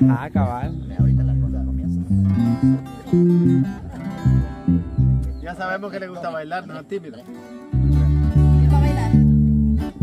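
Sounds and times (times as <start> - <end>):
electric bass line: 0.0 - 5.4, 7.7 - 10.0
acoustic guitars strumming: 0.0 - 6.0, 6.6 - 10.0.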